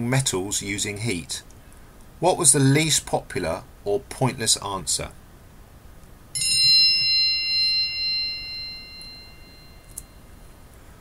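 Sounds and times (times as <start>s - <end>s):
electronic bell-like chime: 6.4s - 10.6s.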